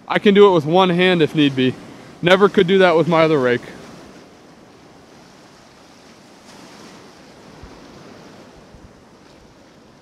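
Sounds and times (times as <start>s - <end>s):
surf washing over sand: 0.0s - 10.0s.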